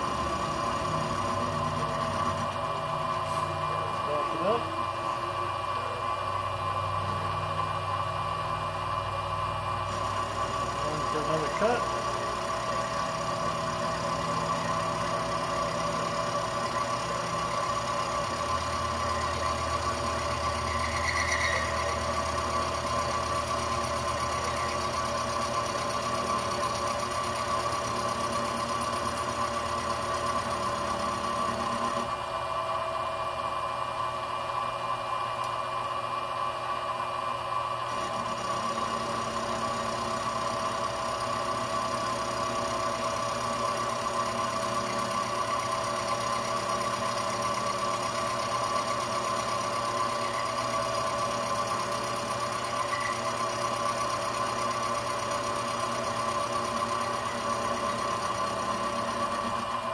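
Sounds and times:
milling machine whining: 0.0s - 59.9s.

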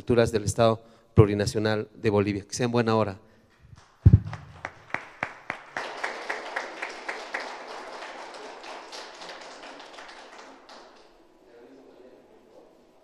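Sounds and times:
audience applauding: 3.8s - 11.3s.

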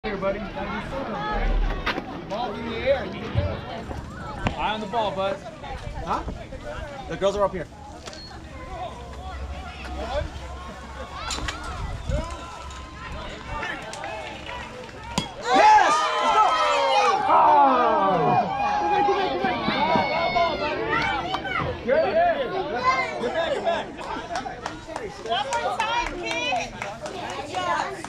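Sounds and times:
crowd shouting and cheering: 0.1s - 5.9s, 6.6s - 28.0s
bat hitting baseball: 15.1s - 15.5s.

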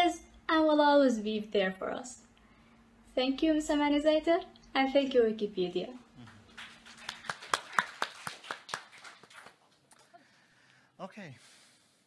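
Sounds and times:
sparse audience clapping: 6.0s - 10.1s.

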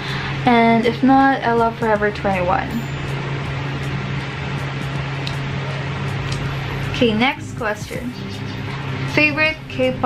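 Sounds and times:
electric fan running: 0.0s - 10.0s.

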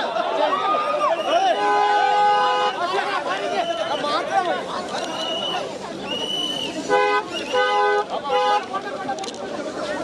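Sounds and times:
crowd chatter and shouts: 0.0s - 10.0s
car horn honking: 1.4s - 2.8s, 6.9s - 8.7s.

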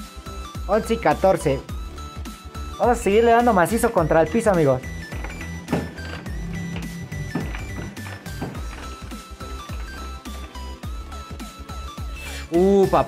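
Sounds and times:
electronic arcade music: 0.0s - 13.0s.

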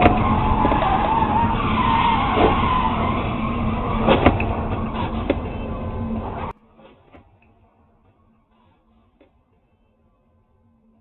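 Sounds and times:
car tyres squealing: 0.0s - 10.4s
road noise: 0.0s - 11.0s.

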